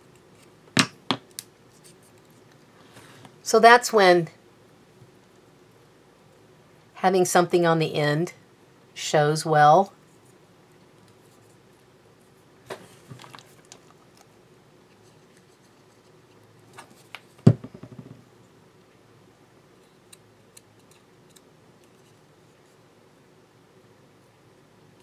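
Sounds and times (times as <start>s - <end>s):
paper rustles and ticks: 13.0s - 14.3s.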